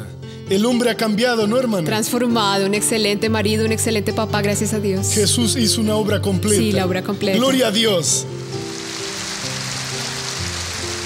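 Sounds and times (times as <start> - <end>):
background music of held chords: 0.0 - 11.0
large audience applauding: 8.3 - 11.0.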